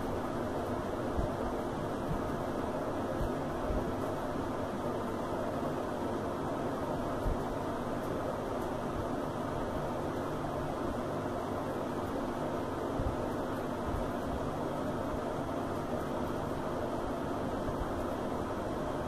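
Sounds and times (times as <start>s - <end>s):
steady background hum and hiss: 0.0s - 19.0s.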